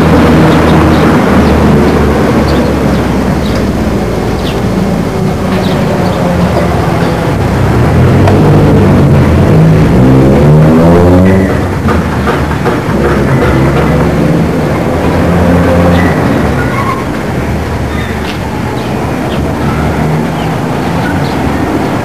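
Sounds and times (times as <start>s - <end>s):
vehicle engine running: 0.0s - 17.9s.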